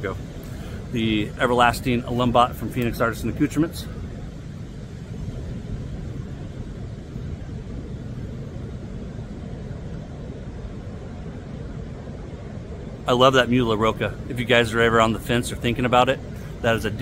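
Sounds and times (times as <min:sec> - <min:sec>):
ocean surf rumbling: 0:00.0 - 0:17.0.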